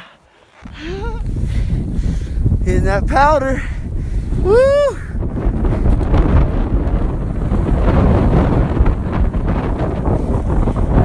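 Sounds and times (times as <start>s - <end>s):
wind on microphone: 0.0s - 11.0s
snowboard sliding through powder: 4.1s - 11.0s
person yelling: 4.4s - 5.1s.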